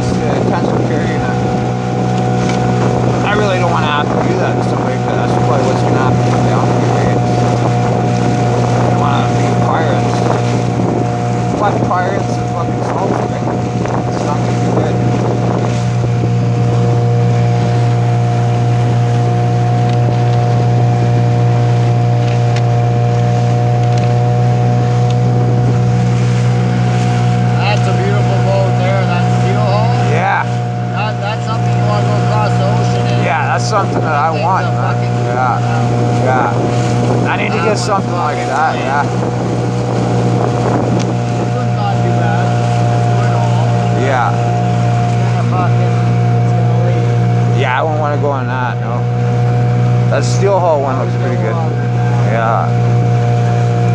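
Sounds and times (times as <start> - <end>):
boat motor droning: 0.0 - 53.9
water wash: 0.0 - 53.9
wind: 0.0 - 53.9.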